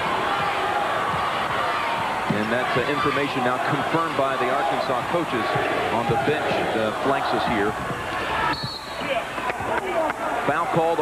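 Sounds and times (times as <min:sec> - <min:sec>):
arena crowd noise: 0:00.0 - 0:11.0
referee's whistle: 0:08.4 - 0:09.0.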